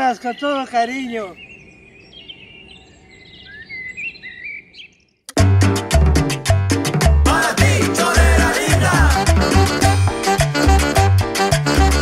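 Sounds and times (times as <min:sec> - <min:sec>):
birds chirping: 0:00.0 - 0:05.3.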